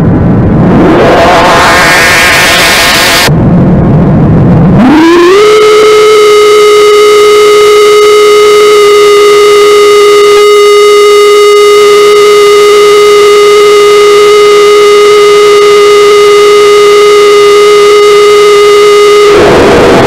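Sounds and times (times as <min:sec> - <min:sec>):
synthesizer steady buzzy tone: 0:00.0 - 0:03.3, 0:04.8 - 0:20.0.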